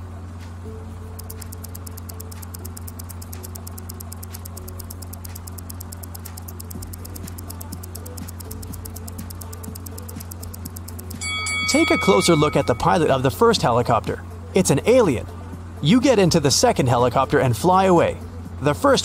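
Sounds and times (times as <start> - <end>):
fast even ticking: 1.2 - 13.1
faint held notes: 1.2 - 13.2.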